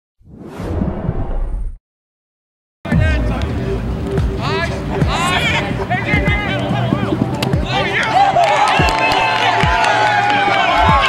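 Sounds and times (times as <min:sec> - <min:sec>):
whoosh with low rumble: 0:00.2 - 0:01.8.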